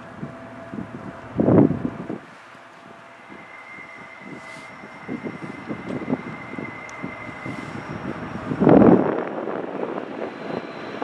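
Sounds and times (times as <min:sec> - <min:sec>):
distant freight train: 0:00.0 - 0:11.0
wind buffeting microphone: 0:00.0 - 0:11.0.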